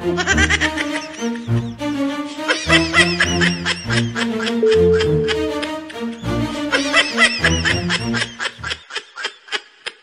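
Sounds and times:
high-pitched snickering laughter: 6.7s - 10.0s.

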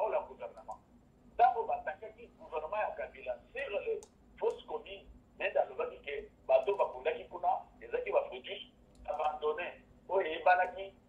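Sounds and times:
person talking: 0.0s - 0.8s, 1.4s - 11.0s.

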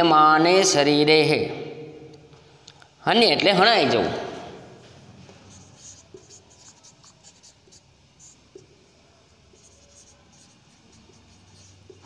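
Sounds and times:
marker pen writing on whiteboard: 4.8s - 12.0s.

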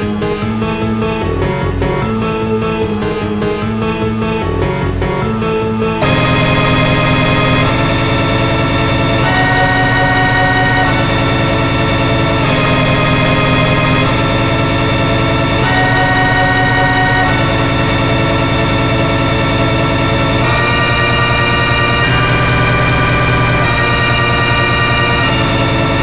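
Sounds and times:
dense ringing piano chords: 0.0s - 26.0s.

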